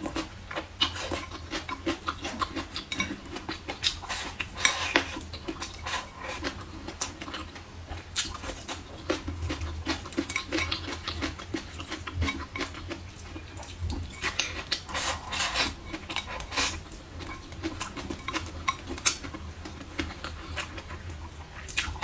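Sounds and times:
chewing and eating: 0.0s - 22.0s.

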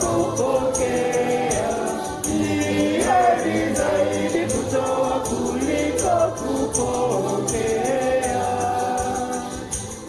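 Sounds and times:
choir singing a hymn: 0.0s - 10.0s
percussion beat: 0.0s - 10.0s.

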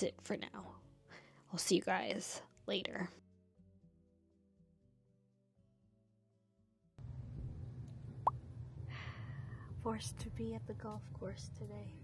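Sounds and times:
low outdoor rumble: 7.0s - 12.0s.

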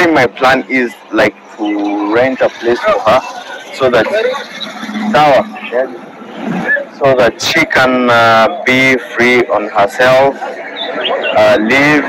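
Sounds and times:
man speaking haltingly: 0.0s - 3.2s, 3.8s - 4.3s, 5.1s - 6.0s, 6.7s - 10.4s, 11.4s - 12.0s.

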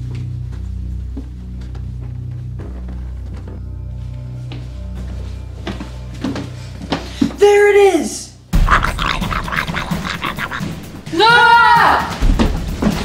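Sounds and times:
low eerie music drone: 0.0s - 7.3s
footsteps: 0.0s - 7.4s
loud screams: 8.6s - 12.1s.

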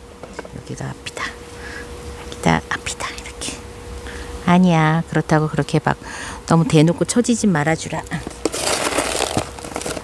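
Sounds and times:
crinkling rustling of handling: 8.0s - 10.0s.

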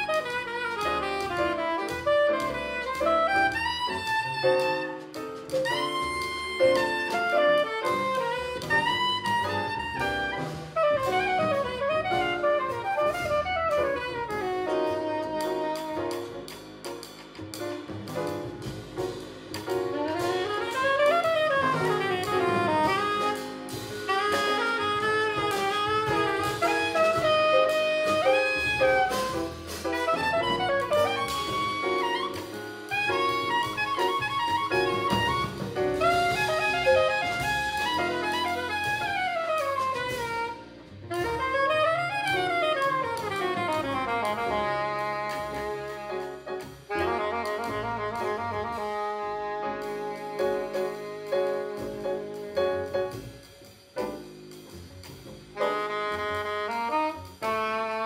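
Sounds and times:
soprano saxophone solo: 0.0s - 16.4s, 19.9s - 53.6s, 55.6s - 58.0s
drum kit: 0.0s - 58.0s
upright double bass: 0.0s - 58.0s.

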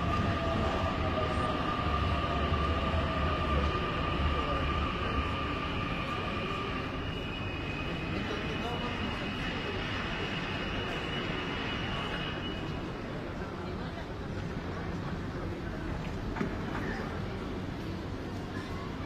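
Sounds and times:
crowd chatter: 0.0s - 19.0s
train low rumble: 0.0s - 19.0s.

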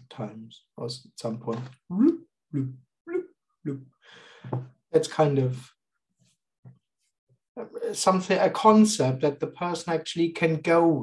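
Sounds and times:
man talking: 0.0s - 3.9s, 4.9s - 5.8s, 7.6s - 11.0s.

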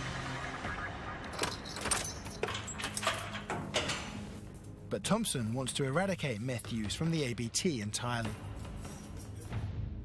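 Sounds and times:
keys jangling: 1.3s - 4.8s, 8.2s - 9.7s.

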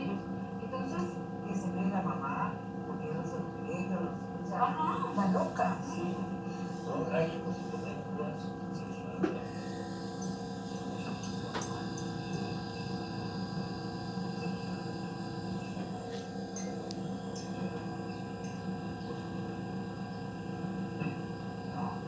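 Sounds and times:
drone of held tones: 9.4s - 22.0s.

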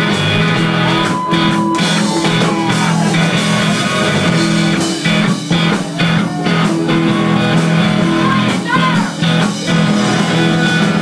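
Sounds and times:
drum and cymbal hits: 0.0s - 11.0s
electric guitar chords: 0.0s - 11.0s.

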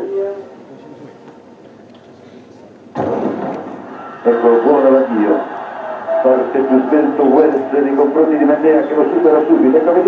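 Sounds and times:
starter's pistol shot: 3.0s - 3.8s.

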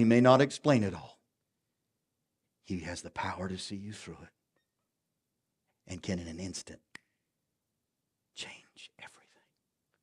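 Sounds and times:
man whispering: 8.3s - 9.6s.

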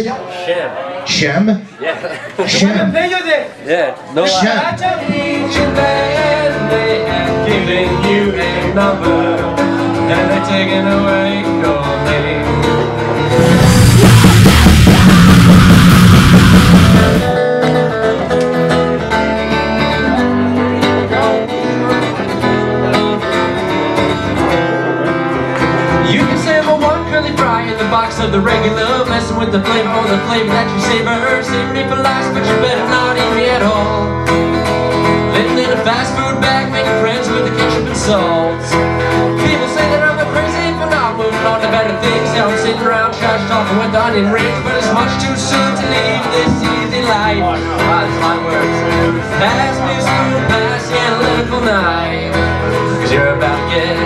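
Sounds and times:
acoustic guitar through speakers: 0.0s - 54.0s
harsh distorted burst: 13.3s - 17.4s.

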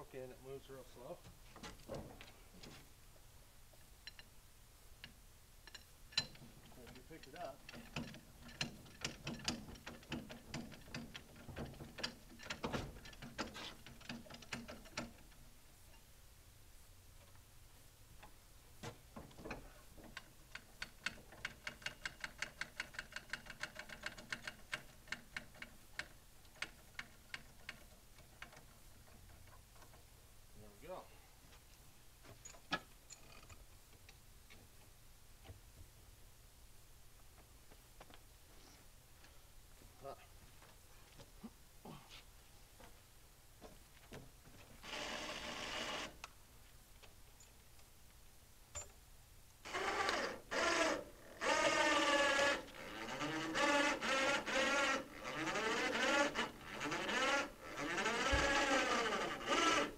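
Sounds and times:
hoist ratchet clicking: 49.7s - 59.9s.

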